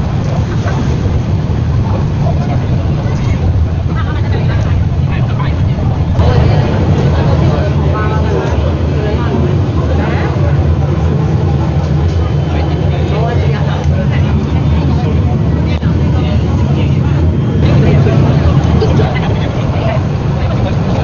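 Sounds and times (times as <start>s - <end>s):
passengers chatting: 0.0s - 21.0s
tram car rumbling on track: 0.0s - 21.0s.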